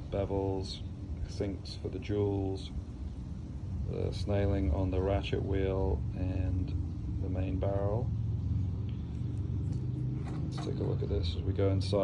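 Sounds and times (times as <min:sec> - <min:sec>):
low background rumble: 0:00.0 - 0:12.0
low hum: 0:00.0 - 0:12.0.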